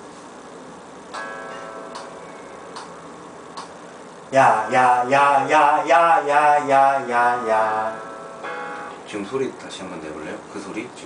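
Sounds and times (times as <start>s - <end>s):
held chord: 1.2s - 2.7s, 4.4s - 9.2s
metronome clicks: 1.9s - 3.0s.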